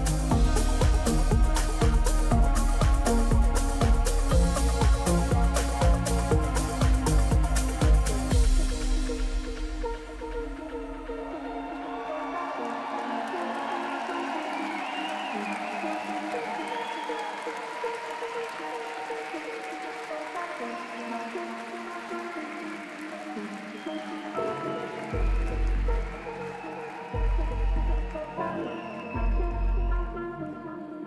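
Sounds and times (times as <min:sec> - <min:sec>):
deep bass pulses: 0:00.0 - 0:11.2
synth pads: 0:00.0 - 0:31.0.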